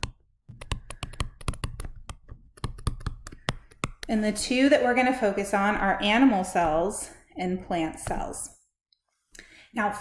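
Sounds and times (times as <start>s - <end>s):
stylus tapping on tablet screen: 0.0s - 4.3s.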